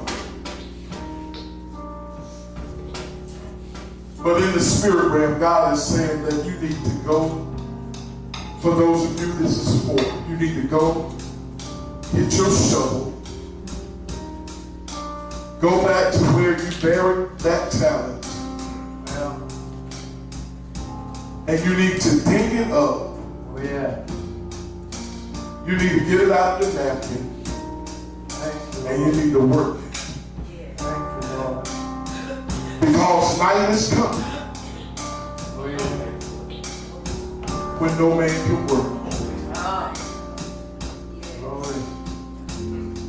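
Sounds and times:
keyboard sustained chords: 0.0 - 43.0
drums and cymbal strokes: 5.8 - 43.0
preacher's loud voice: 32.7 - 34.5.

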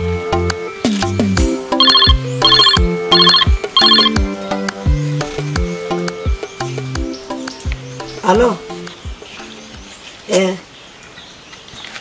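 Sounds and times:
background music with beat: 0.0 - 8.2
mobile phone ringtone trills: 1.8 - 4.2.

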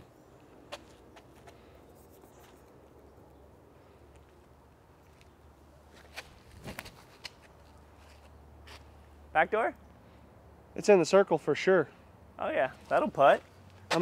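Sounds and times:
faint outdoor background: 0.0 - 14.0
sharp taps and scuffs: 0.5 - 2.8, 5.9 - 8.9, 13.7 - 14.0
footsteps on concrete: 13.7 - 14.0.

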